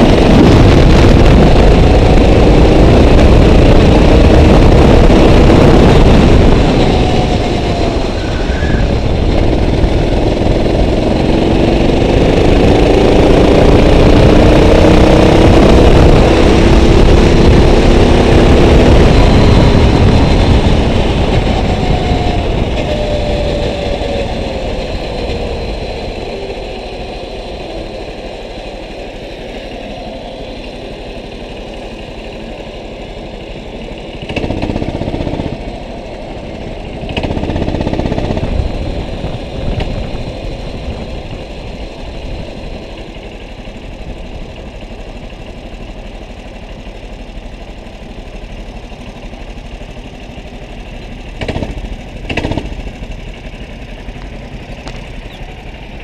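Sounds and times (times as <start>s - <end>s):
go-kart engine: 0.0s - 56.0s.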